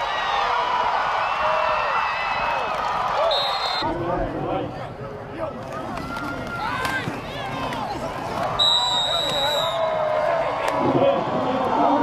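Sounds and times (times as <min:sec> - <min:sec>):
stadium crowd shouting: 0:00.0 - 0:04.0, 0:05.1 - 0:12.0
referee's whistle: 0:03.2 - 0:03.9, 0:08.6 - 0:10.0.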